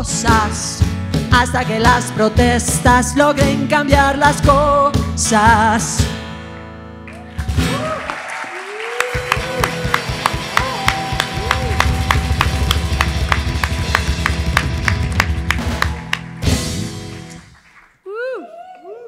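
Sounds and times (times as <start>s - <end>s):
rock band playing: 0.0s - 3.7s, 9.2s - 17.6s
crowd cheering and applauding: 7.0s - 19.0s
steady percussion beat: 9.3s - 17.4s.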